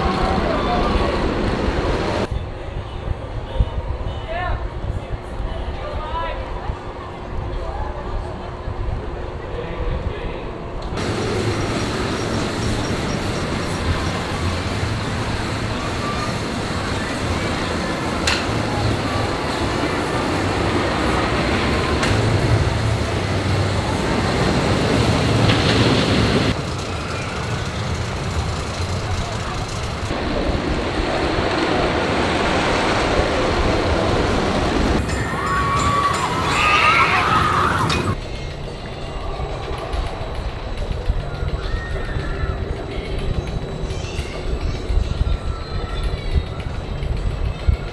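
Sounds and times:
roller coaster wheels roaring on rail: 0:00.0 - 0:47.9
riders screaming: 0:35.1 - 0:38.2, 0:41.5 - 0:42.8.

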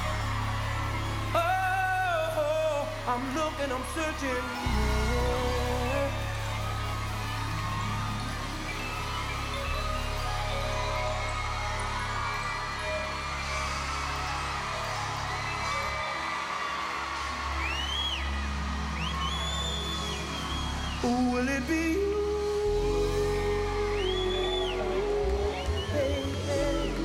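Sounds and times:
arena crowd cheering: 0:00.0 - 0:27.0
high-pitched screams and whoops: 0:00.0 - 0:27.0.

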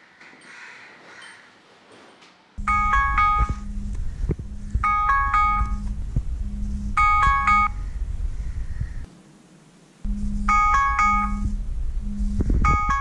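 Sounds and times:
smartphone alarm chiming melody: 0:02.6 - 0:03.7, 0:04.5 - 0:07.8, 0:10.4 - 0:11.6, 0:12.6 - 0:13.0
low buzzing: 0:02.6 - 0:13.0.

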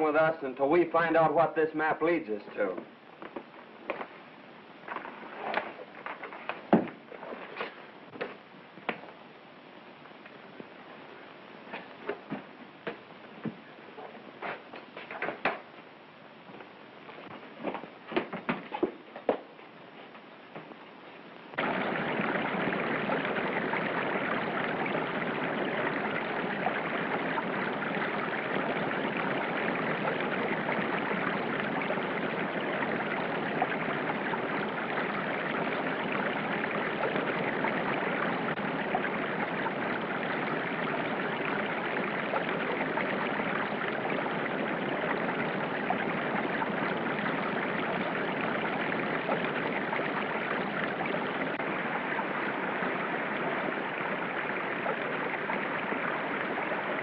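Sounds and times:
river water rushing over rapids: 0:21.6 - 0:39.8.

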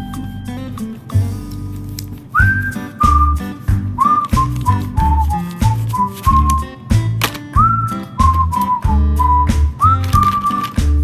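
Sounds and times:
bass line and light percussion: 0:00.0 - 0:11.0
whistled tune: 0:02.3 - 0:06.8, 0:07.6 - 0:11.0.

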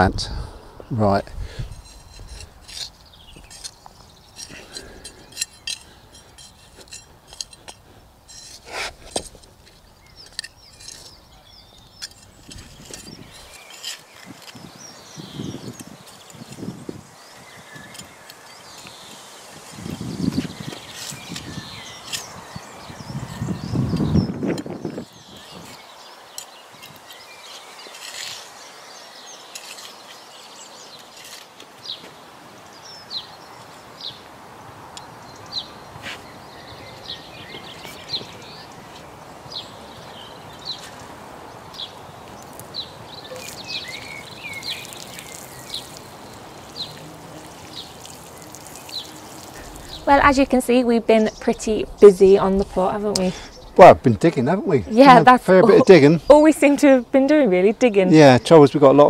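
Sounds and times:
birds chirping: 0:00.0 - 0:59.0
hand trowel scraping soil: 0:01.4 - 0:32.2, 0:36.0 - 0:36.3, 0:40.2 - 0:50.5.

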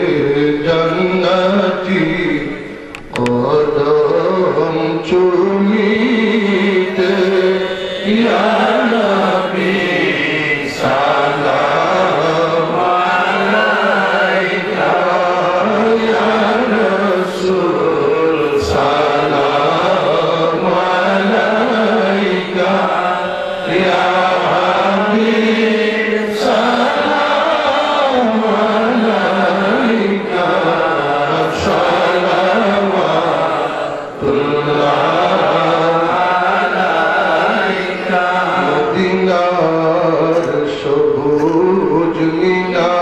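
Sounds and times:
crowd of men chanting: 0:05.8 - 0:40.4.

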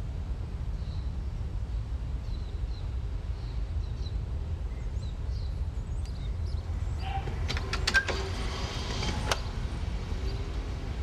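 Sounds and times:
metal door latch clicking: 0:07.2 - 0:08.4.

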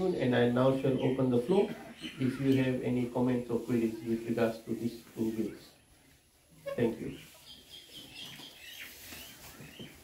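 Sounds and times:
birds chirping faintly: 0:00.0 - 0:10.0.

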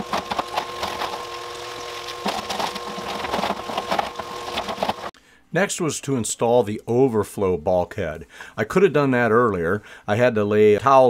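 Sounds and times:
steady hum: 0:00.0 - 0:05.2
rocks clattering in plastic barrel: 0:02.0 - 0:05.1.

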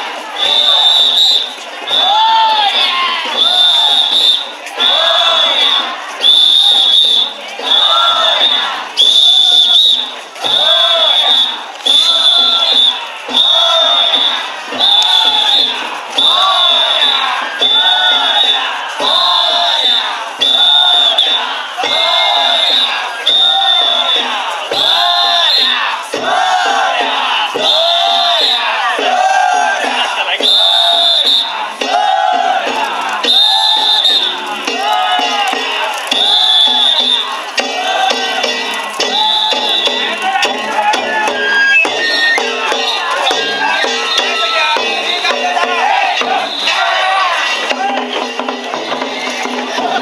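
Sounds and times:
people chanting in unison: 0:00.0 - 0:50.0
whistle blowing: 0:00.3 - 0:32.6, 0:33.2 - 0:48.4.

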